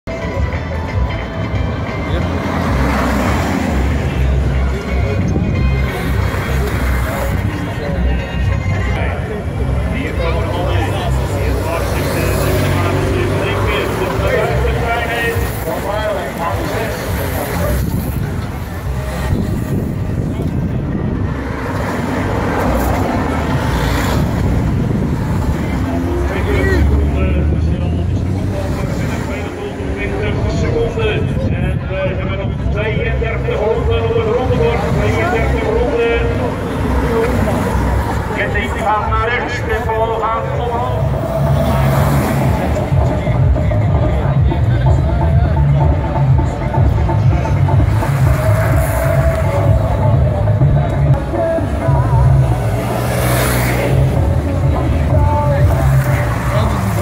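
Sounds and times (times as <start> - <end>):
spectators chattering: 0.0 - 57.0
vehicles driving past: 0.1 - 57.0
car driving past: 40.8 - 43.1, 47.5 - 57.0.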